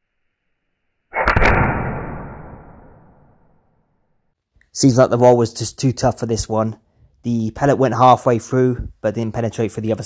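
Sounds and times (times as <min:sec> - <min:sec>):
pellet revolver shot: 0:01.2 - 0:03.2.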